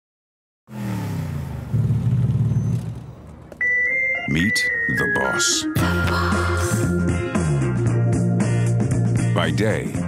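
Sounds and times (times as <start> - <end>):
steady high tone: 3.6 - 7.4.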